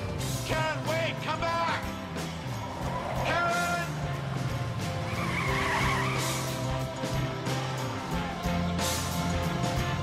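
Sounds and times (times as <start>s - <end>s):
background music: 0.0s - 10.0s
car tyres squealing: 2.4s - 8.4s.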